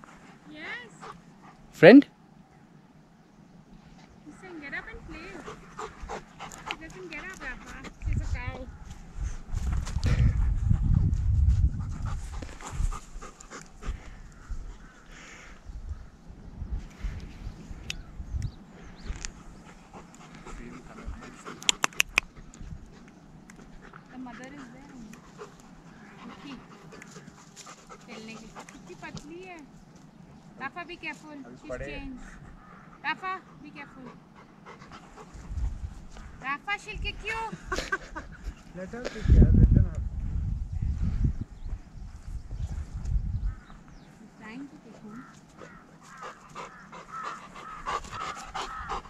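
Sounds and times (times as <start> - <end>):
dog panting: 0.0 - 1.8, 4.7 - 14.9, 19.0 - 29.5, 31.7 - 36.2, 44.8 - 49.0.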